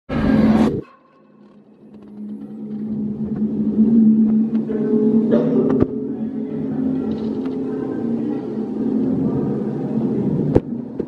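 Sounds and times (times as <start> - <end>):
low droning hum: 0.1 - 11.0.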